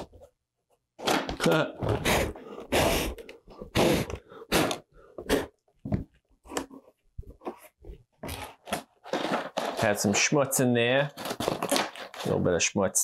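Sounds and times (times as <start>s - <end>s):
paper rustling against cardboard box: 8.3s - 10.3s, 11.0s - 12.5s.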